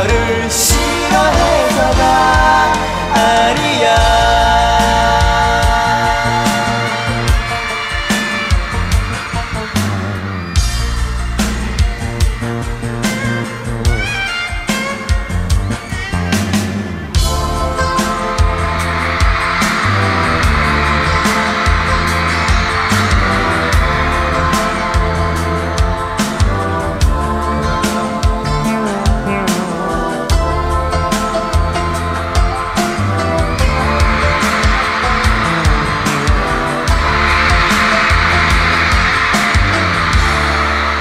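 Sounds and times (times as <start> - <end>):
drums and bass beat: 0.0 - 41.0
live pop-rock band playing: 0.0 - 41.0.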